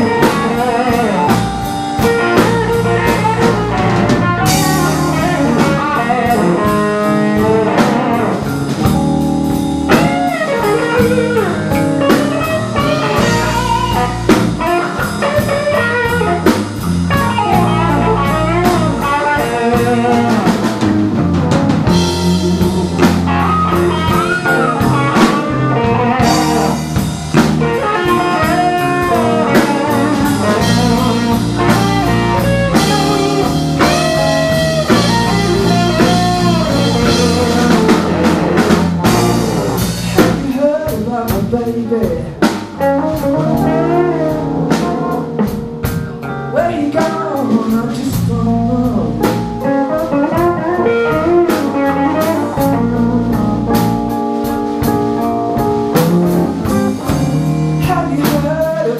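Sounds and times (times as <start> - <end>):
drum kit: 0.0 - 58.9
electric bass: 0.0 - 58.9
electric guitar lead: 0.0 - 58.9.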